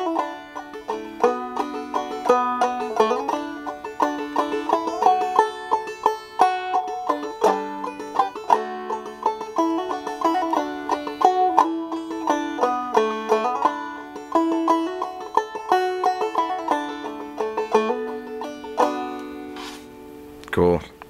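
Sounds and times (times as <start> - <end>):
banjo melody: 0.0 - 20.2.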